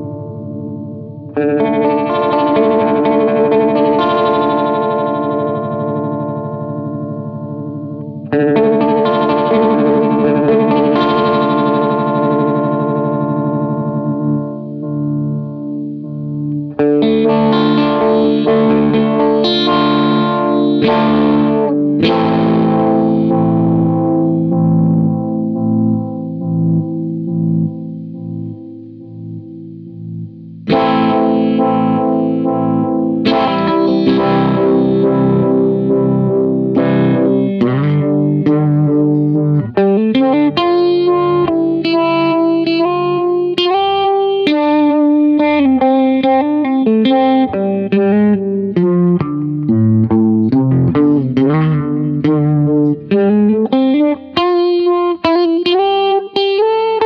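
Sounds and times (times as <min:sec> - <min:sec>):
electric guitar with vibrato: 0:00.0 - 0:57.0.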